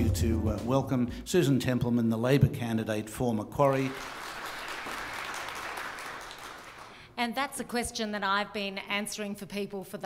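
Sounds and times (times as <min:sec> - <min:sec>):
audience applauding: 0:03.8 - 0:07.0.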